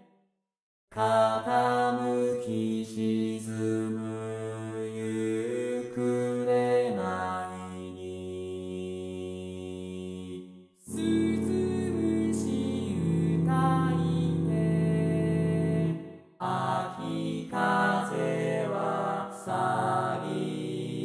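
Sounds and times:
synthesized male choir singing: 1.0 - 21.0.

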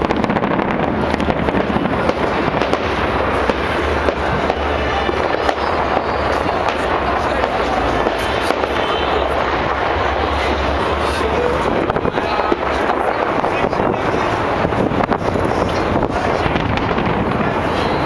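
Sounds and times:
crowd voices: 0.0 - 18.0
fireworks crackling: 0.0 - 18.0.

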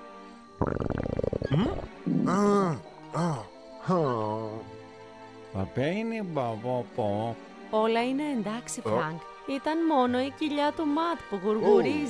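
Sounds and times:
cartoon stomach growl: 0.6 - 3.4.

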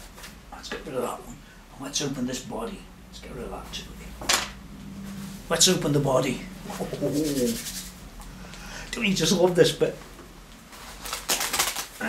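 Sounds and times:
packing wrap crinkling: 10.6 - 12.0.

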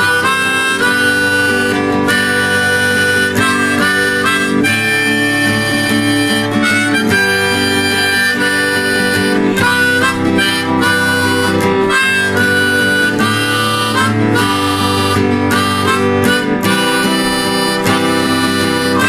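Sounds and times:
acoustic guitar accompaniment: 0.0 - 19.0
harmonica playing: 0.0 - 19.0.

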